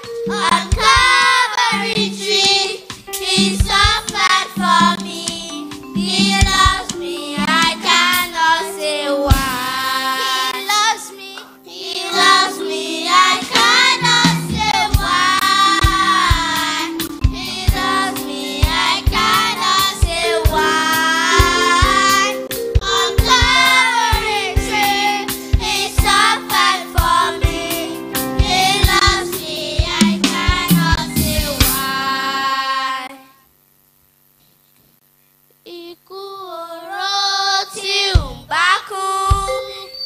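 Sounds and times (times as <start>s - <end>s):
band with steady beat: 0.0s - 8.6s, 9.3s - 10.7s, 12.1s - 32.0s
children's choir singing: 0.0s - 33.2s, 36.1s - 40.0s.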